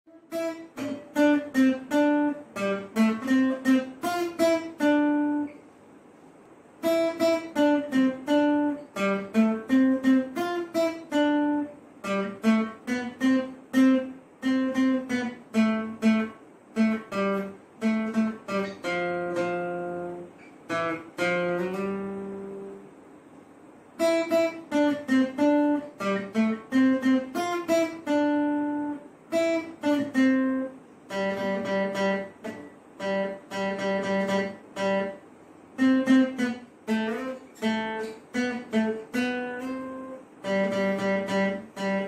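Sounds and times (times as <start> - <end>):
acoustic guitar picking melody: 0.1 - 42.0.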